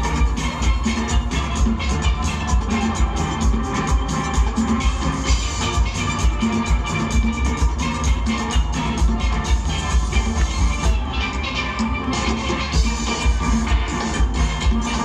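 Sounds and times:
steady low drum beat: 0.0 - 15.0.

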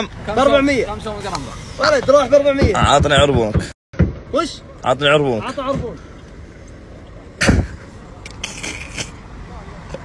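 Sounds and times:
car and traffic hum: 0.0 - 10.0.

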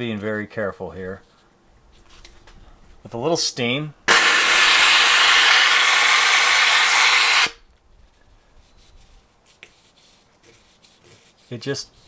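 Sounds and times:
steam cleaner hissing: 4.1 - 7.6.

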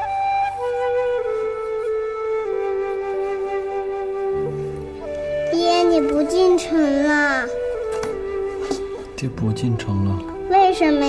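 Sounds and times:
soft music with flute-like tone: 0.0 - 11.0
little girl asking a question: 5.4 - 7.7, 10.4 - 11.0.

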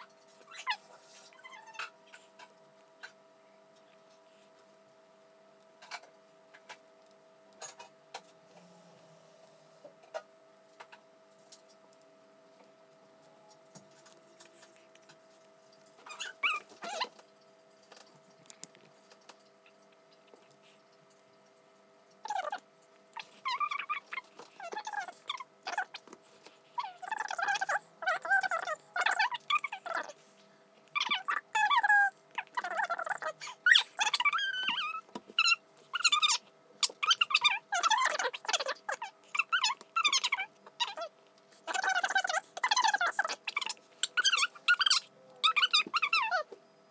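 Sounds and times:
high-pitched vocal squeaks: 0.0 - 2.3, 16.0 - 17.2, 22.2 - 30.2, 30.9 - 46.6.

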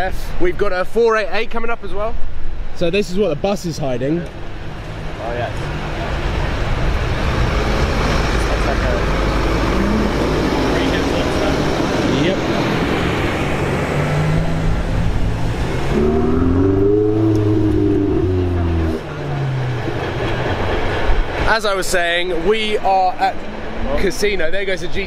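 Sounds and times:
traffic rumble: 0.0 - 25.0
bus passing: 3.8 - 25.0
sports car accelerating: 4.2 - 21.4.

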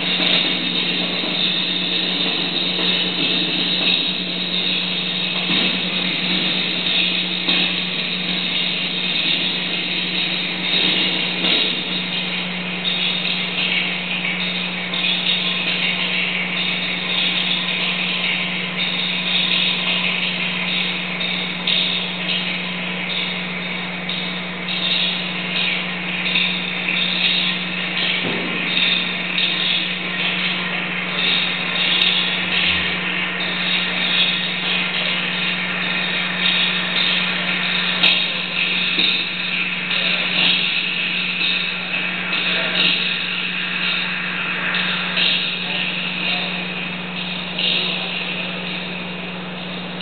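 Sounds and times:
harsh hiss and crackle noise: 0.0 - 50.0.

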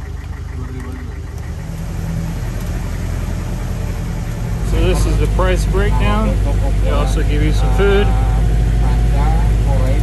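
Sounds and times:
jeep engine driving uphill: 0.0 - 10.0.

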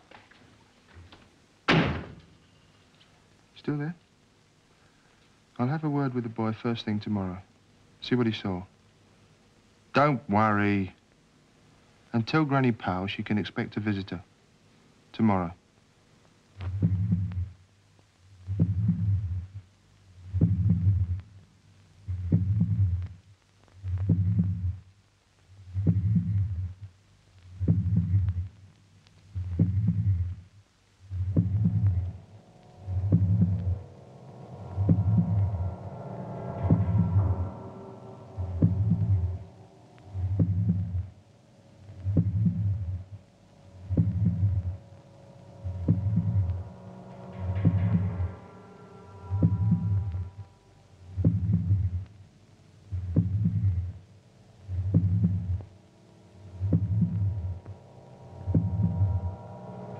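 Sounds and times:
low heartbeat-like pulse: 16.6 - 17.6, 18.3 - 59.9.

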